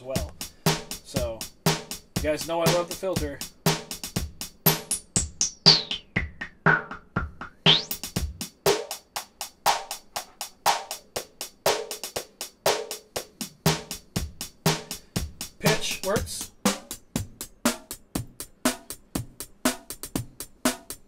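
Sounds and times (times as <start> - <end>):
drum loop: 0.0 - 21.0.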